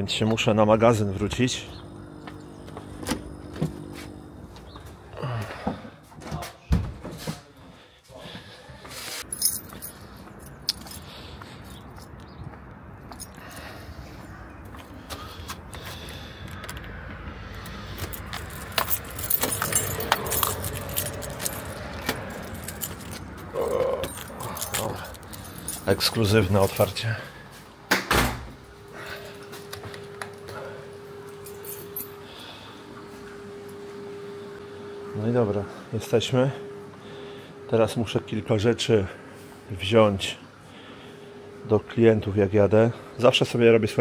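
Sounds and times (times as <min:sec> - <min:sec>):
street traffic: 0:00.0 - 0:06.1, 0:08.5 - 0:43.8
keys jangling: 0:09.2 - 0:12.3, 0:17.6 - 0:27.0, 0:31.3 - 0:32.3
door unlocking: 0:17.7 - 0:25.9.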